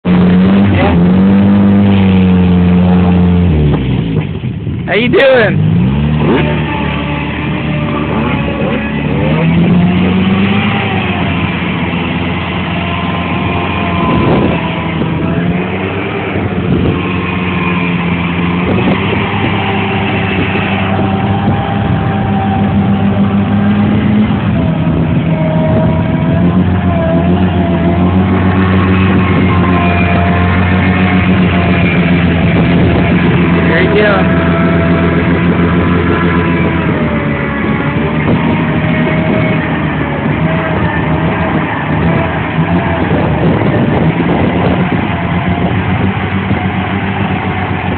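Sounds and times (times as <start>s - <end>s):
engine revving under load: 0.0s - 47.9s
tires churning through mud and water: 0.0s - 47.9s.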